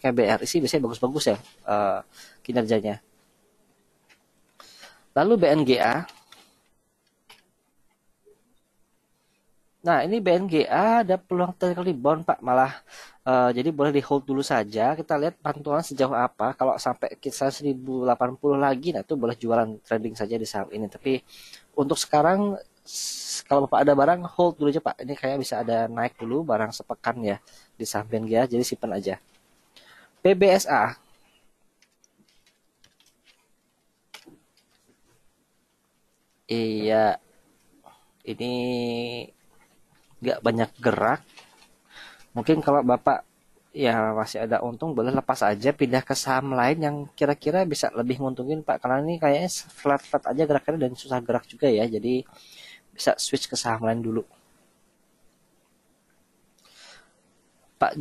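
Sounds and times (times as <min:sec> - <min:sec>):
computer keyboard typing: 0:31.8 - 0:34.8.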